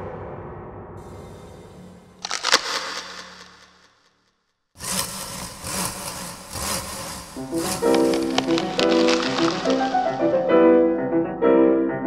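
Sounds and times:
low hum: 0.9s - 4.0s
sharp cracks: 2.1s - 10.6s
dense crackling rustling noise: 7.6s - 10.4s.

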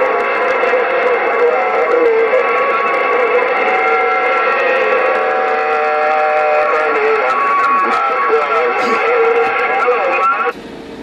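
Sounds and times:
radio static: 0.0s - 10.6s
whistling radio tones: 0.0s - 10.6s.

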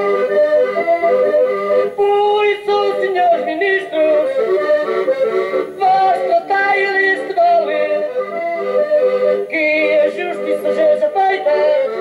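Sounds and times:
accordion folk tune: 0.0s - 12.0s
person singing: 1.9s - 4.6s, 5.6s - 8.4s, 9.4s - 12.0s.

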